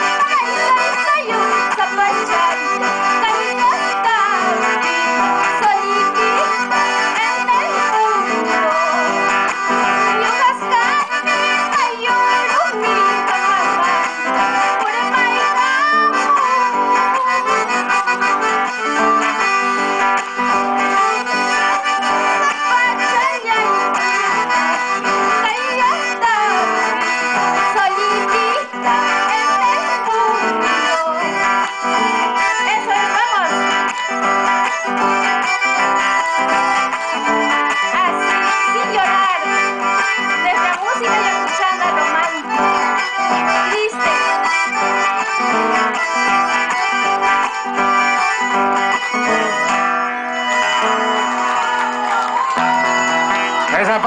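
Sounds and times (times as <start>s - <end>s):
accordion: 0.0s - 54.0s
acoustic guitar: 0.0s - 54.0s.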